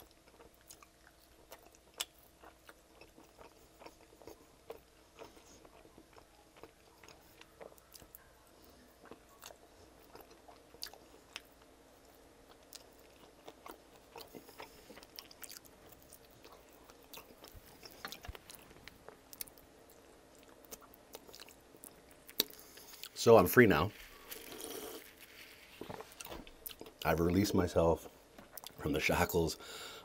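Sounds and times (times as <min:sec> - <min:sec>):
chewing and wet mouth smacks: 0:00.0 - 0:23.2, 0:24.4 - 0:27.1, 0:28.4 - 0:28.8.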